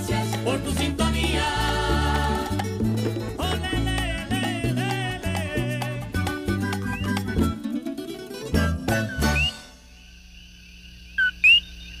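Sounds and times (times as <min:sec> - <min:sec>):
short whistles: 0:06.7 - 0:07.4, 0:09.0 - 0:09.8.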